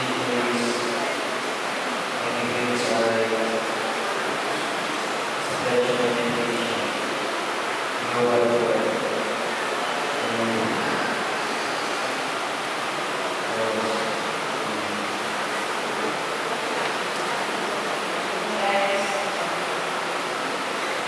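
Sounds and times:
background hiss: 0.0 - 21.0.

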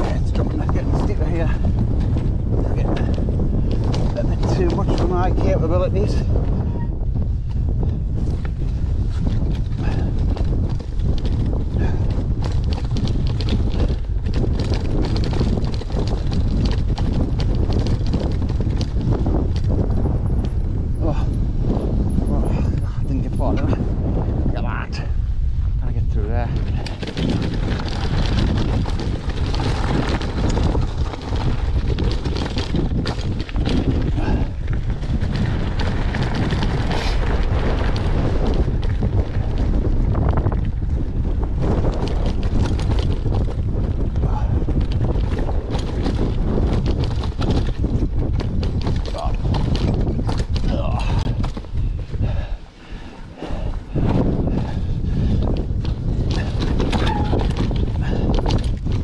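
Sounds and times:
mountain bike rattling over rocks: 0.0 - 25.1, 25.8 - 59.0
wind buffeting microphone: 0.0 - 59.0.

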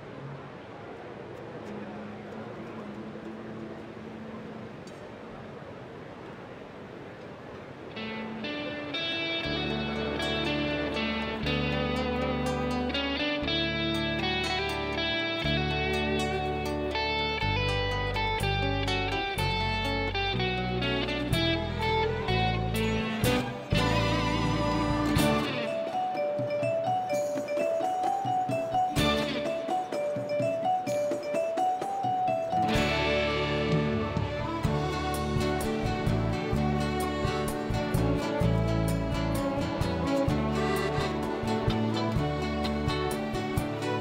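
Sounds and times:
hall noise: 0.0 - 44.0
orchestra with strings playing: 7.9 - 44.0
deep bass notes: 32.7 - 43.8.

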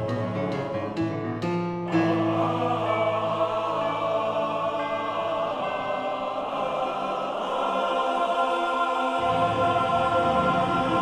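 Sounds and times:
choir singing a chord: 1.9 - 11.0.

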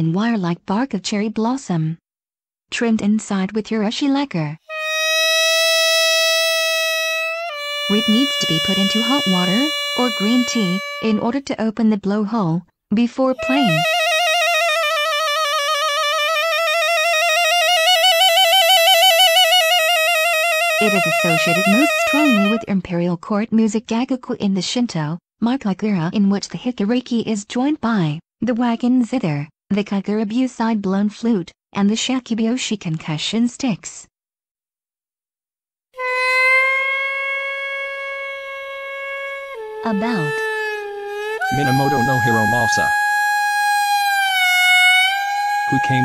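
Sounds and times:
double-reed oboe long note: 4.7 - 11.4, 13.4 - 22.7, 36.0 - 46.0.

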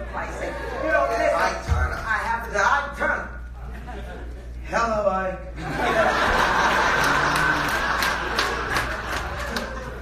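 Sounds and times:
audience laughing: 3.6 - 4.6, 5.6 - 10.0
scattered claps: 6.9 - 10.0.

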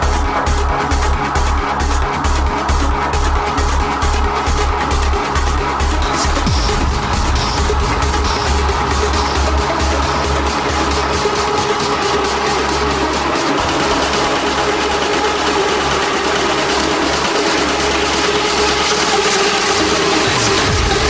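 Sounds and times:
heavy bass: 0.0 - 21.0
trance music beat: 0.0 - 21.0.

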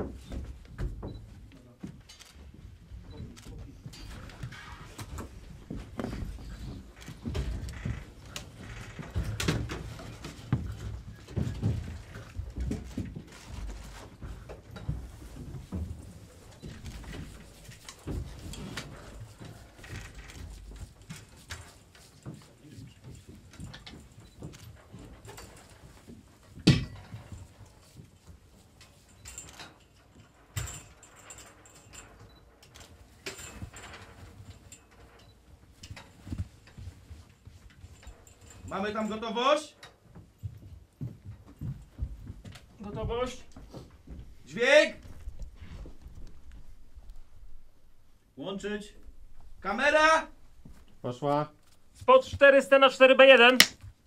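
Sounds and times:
rustling and shuffling: 0.0 - 54.0.

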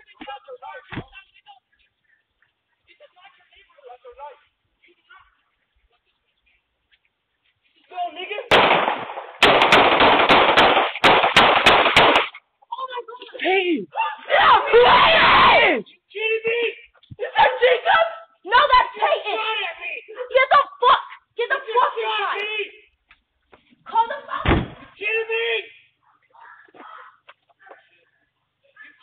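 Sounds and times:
distorted gunshots with echo: 8.5 - 12.3
person calling out loudly: 13.4 - 14.2
heavy thud: 24.4 - 24.9.

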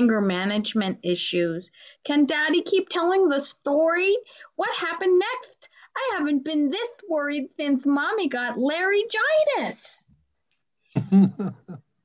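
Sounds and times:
woman speaking animatedly: 0.0 - 10.1
person speaking: 11.0 - 11.8.

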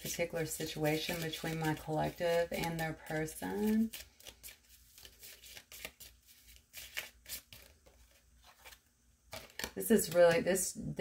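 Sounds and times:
shuffling deck of cards: 0.1 - 10.4.

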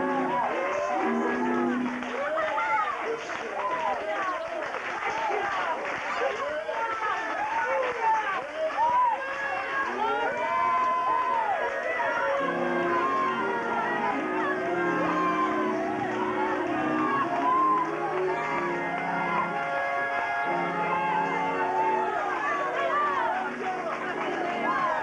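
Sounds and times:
gospel singers singing: 11.9 - 25.0.

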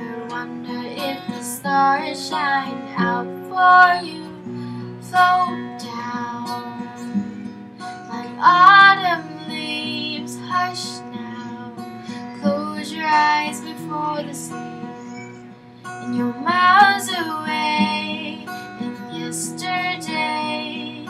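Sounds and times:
acoustic guitar: 0.0 - 21.0
woman singing: 0.0 - 21.0.

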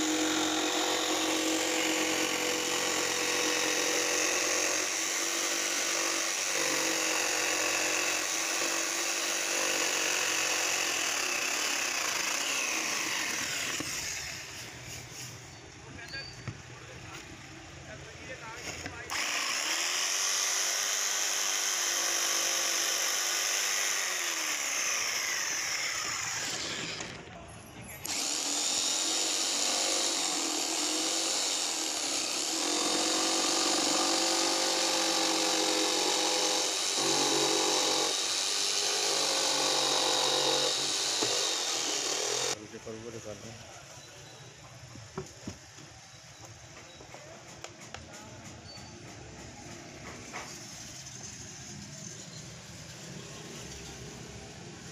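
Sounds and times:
jigsaw cutting fibreboard: 0.0 - 14.1, 19.1 - 27.2, 28.0 - 42.6.

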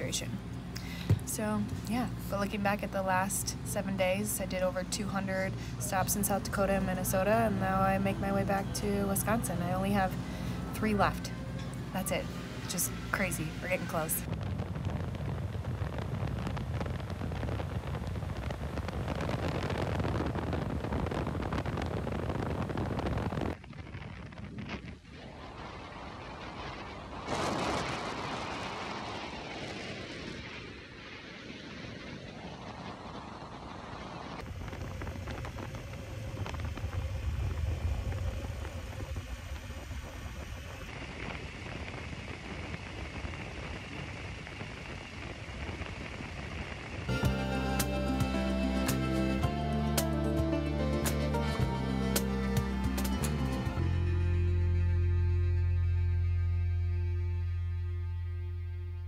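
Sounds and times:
wind rushing over microphone: 0.0 - 49.7.

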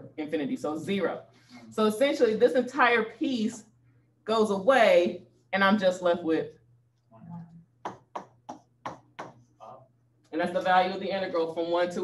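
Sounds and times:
stylus tapping on pen tablet: 7.8 - 9.4.

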